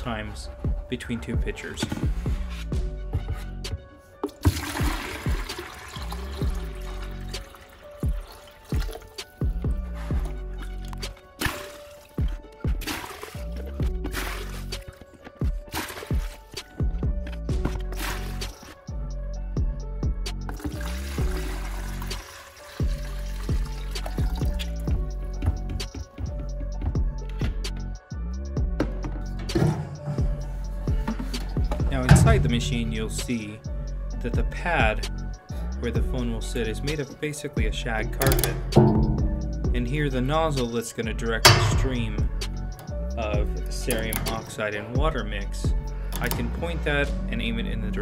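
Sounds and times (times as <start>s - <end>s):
background music: 0.0s - 48.0s
slurry splashing between pitchers: 4.2s - 9.4s, 11.1s - 16.6s, 17.8s - 18.8s.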